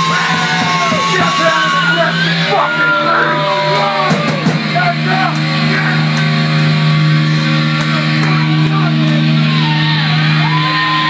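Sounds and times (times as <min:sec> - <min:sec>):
distorted electric guitar note: 0:00.0 - 0:11.0.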